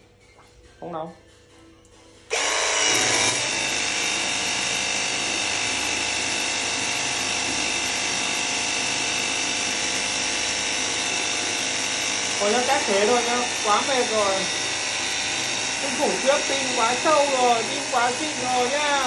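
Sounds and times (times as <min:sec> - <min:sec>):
pressure washer motor whine: 0:02.3 - 0:19.0.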